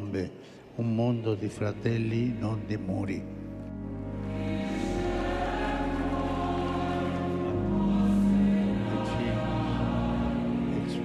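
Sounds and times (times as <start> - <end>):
choir singing long held notes: 0.9 - 11.0.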